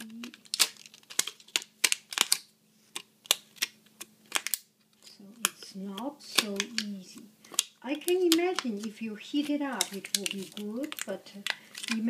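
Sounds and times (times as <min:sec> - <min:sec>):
thin plastic crackling: 0:00.0 - 0:12.0.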